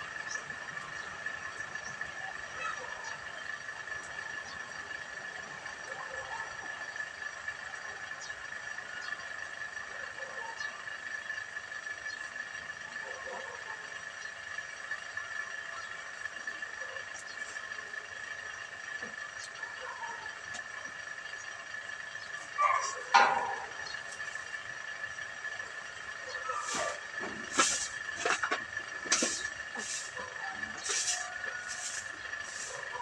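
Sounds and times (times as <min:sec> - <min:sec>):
faint distant voices: 0:00.0 - 0:33.0
steady high-pitched whine: 0:00.0 - 0:33.0.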